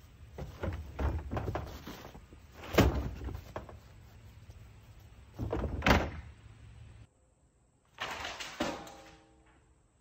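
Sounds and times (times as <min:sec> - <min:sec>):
plastic bin lid slamming shut: 0:02.6 - 0:03.3, 0:05.4 - 0:06.2.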